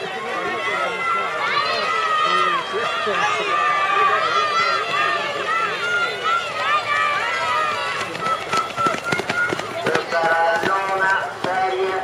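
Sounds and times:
long drawn-out shout: 0.0s - 9.8s
spectators shouting encouragement: 0.0s - 12.0s.

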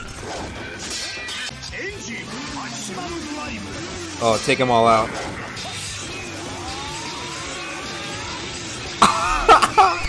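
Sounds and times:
slow rising whine: 6.1s - 8.9s.

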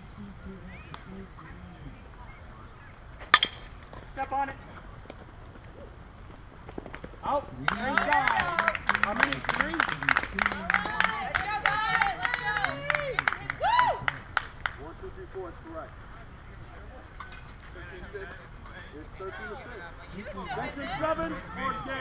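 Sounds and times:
softball bat hitting ball: 3.2s - 4.0s
scattered clapping: 7.6s - 14.8s
people shouting and cheering: 10.6s - 14.2s.

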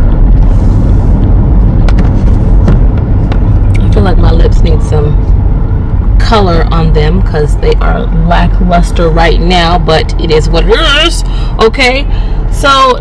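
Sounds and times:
car road noise rumble: 0.0s - 13.0s.

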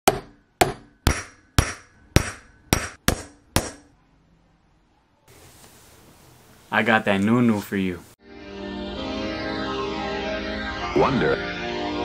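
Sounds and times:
hammer striking metal sheet: 0.1s - 3.9s.

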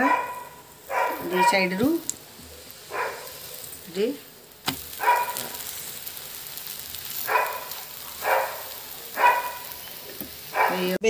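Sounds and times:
dog barking: 0.0s - 1.8s, 2.9s - 3.6s, 5.0s - 5.6s, 7.2s - 9.8s, 10.5s - 11.0s
pancake sizzling in a pan: 0.0s - 11.0s.

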